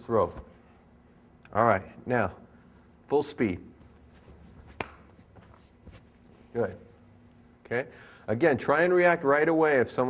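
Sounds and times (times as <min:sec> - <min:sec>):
feet scuffling on a mat: 0:03.7 - 0:07.0.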